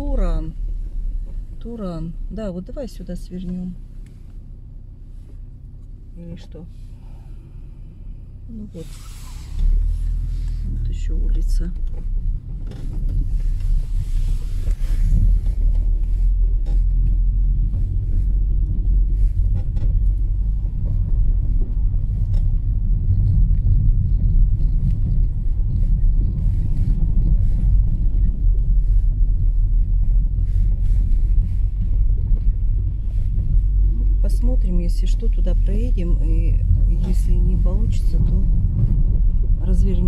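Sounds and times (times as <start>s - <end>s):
car engine and tyres rumbling: 0.0s - 40.0s.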